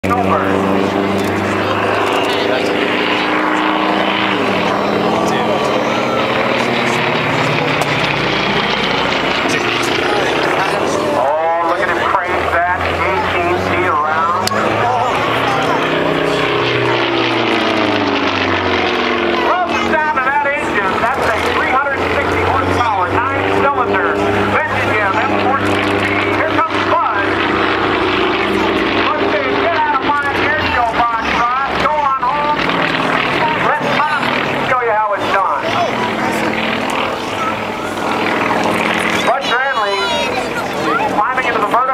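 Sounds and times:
propeller plane engine droning: 0.0s - 41.9s.

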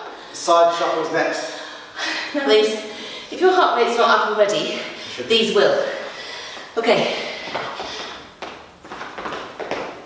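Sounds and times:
trainers scuffing on hard floor: 7.5s - 10.0s.

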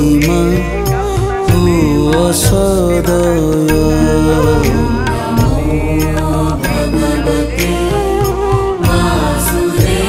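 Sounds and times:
sung mantra: 0.0s - 10.0s
low drone: 2.0s - 10.0s.

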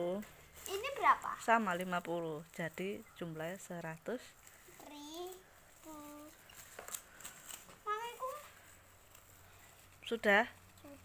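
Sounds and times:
plastic bag crinkling: 0.1s - 11.0s.

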